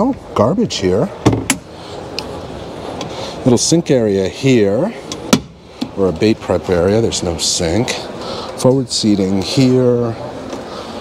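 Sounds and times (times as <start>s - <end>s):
background hall noise: 0.0s - 11.0s.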